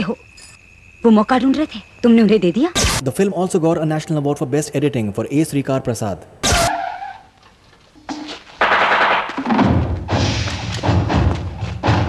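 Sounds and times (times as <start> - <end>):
sharp bang: 8.6 - 11.3
loud dense film music: 9.5 - 12.0.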